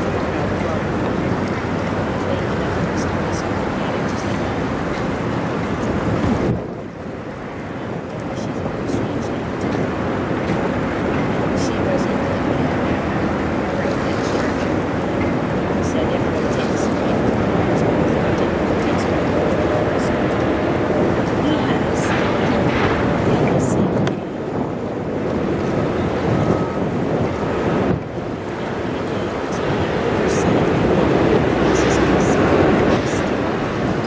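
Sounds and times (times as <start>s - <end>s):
waves washing on shore: 0.0s - 34.0s
wind buffeting microphone: 0.0s - 34.0s.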